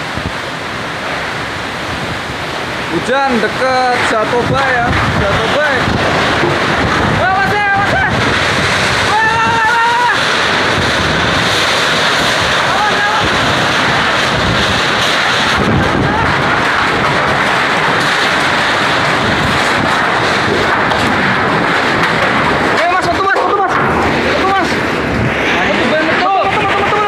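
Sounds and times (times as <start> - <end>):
heavy rain: 0.0 - 27.0
strong wind: 0.0 - 27.0
wind buffeting microphone: 0.0 - 27.0.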